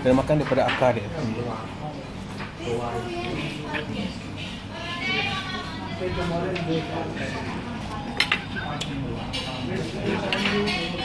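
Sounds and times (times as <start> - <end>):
murmur of voices: 0.0 - 11.0
metal spoon clinking on plate: 8.2 - 9.6.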